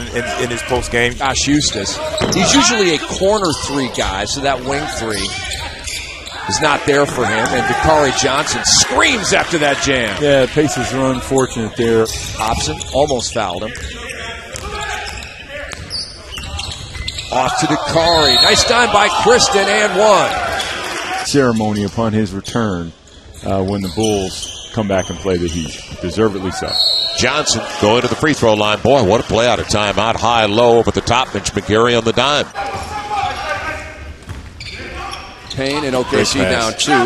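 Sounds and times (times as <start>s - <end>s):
voices of players and spectators: 0.0s - 37.0s
shoe squeak: 4.8s - 6.6s, 12.1s - 18.7s, 23.0s - 27.2s, 34.6s - 36.6s.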